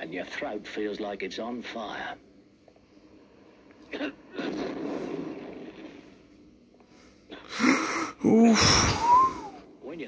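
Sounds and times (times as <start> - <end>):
man sneezing: 7.5 - 9.5.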